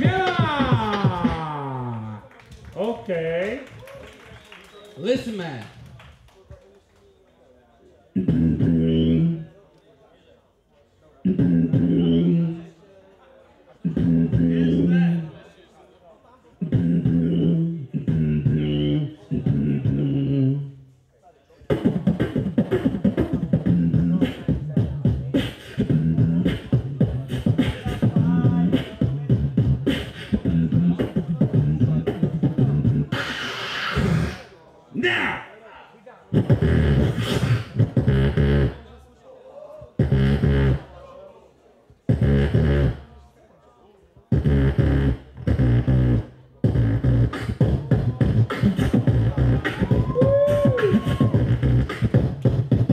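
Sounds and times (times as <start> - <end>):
beatboxer humming bass notes: 0.0 - 2.2, 8.1 - 9.6, 11.2 - 12.7, 13.8 - 15.4, 16.6 - 20.8, 21.7 - 34.5, 36.3 - 38.9, 39.9 - 40.9, 42.1 - 43.1, 44.3 - 52.9
percussive beatbox beats: 0.0 - 2.2, 8.1 - 9.5, 11.2 - 12.6, 13.8 - 15.4, 16.6 - 20.8, 21.6 - 34.5, 36.3 - 38.9, 39.9 - 40.9, 42.0 - 43.1, 44.3 - 52.9.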